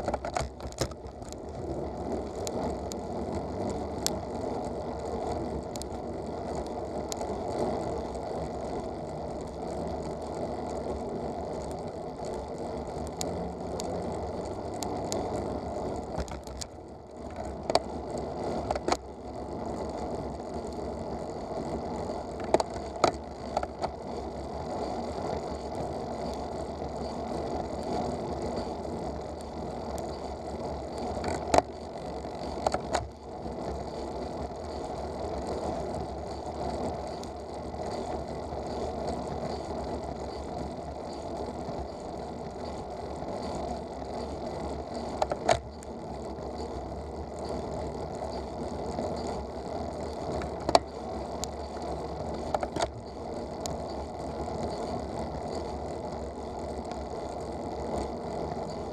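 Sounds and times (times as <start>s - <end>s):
bicycle freewheel ticking: 0.0s - 58.9s
tyre and road noise: 0.0s - 58.9s.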